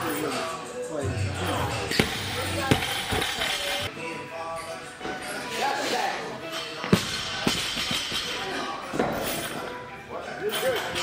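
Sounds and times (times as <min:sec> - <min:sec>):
music with singing: 0:00.0 - 0:11.0.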